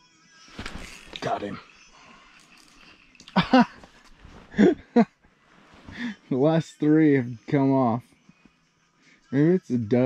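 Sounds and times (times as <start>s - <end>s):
man laughing: 3.2s - 5.2s.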